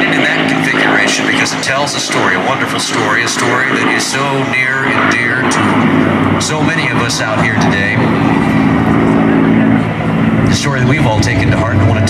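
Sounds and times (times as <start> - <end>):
aircraft engine drone: 0.0 - 12.0.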